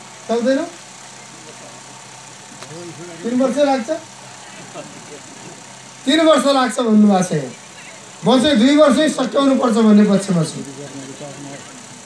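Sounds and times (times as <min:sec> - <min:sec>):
background hum and hiss: 0:00.0 - 0:12.0
faint voices: 0:00.7 - 0:12.0.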